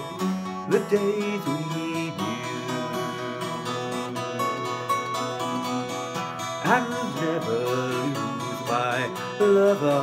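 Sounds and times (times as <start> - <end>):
fingerpicked twelve-string acoustic guitar: 0.0 - 10.0.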